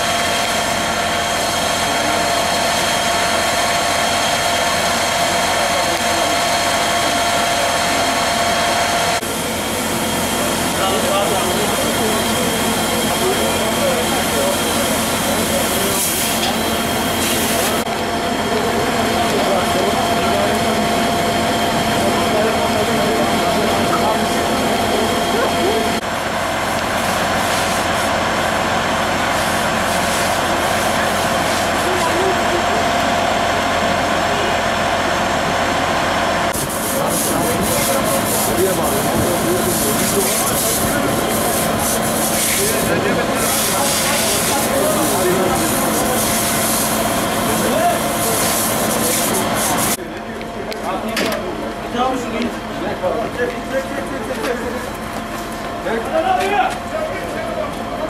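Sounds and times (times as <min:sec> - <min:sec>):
fire engine running: 0:00.0 - 0:58.0
indistinct voices: 0:01.6 - 0:26.1, 0:36.4 - 0:58.0.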